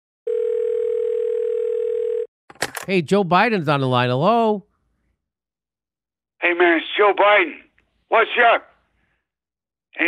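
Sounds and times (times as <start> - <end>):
telephone dial tone: 0.3 - 2.3.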